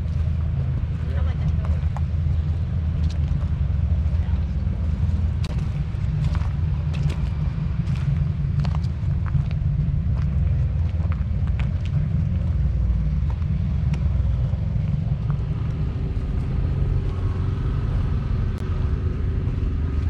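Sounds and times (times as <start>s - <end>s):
higher engine tone: 0.0s - 20.0s
vehicle engine low rumble: 0.0s - 20.0s.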